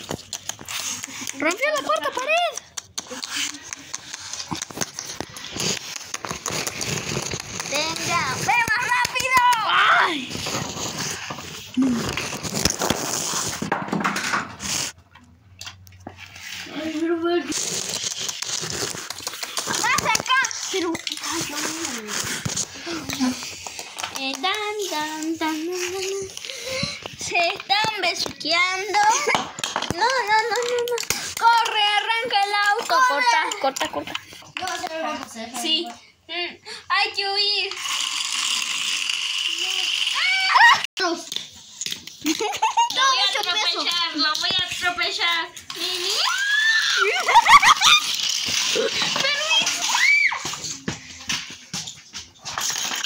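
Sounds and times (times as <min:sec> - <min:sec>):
children talking and playing: 0:00.0 - 0:13.3, 0:14.7 - 0:53.0
plastic toys rustling and clicking: 0:00.0 - 0:35.8, 0:37.3 - 0:53.0.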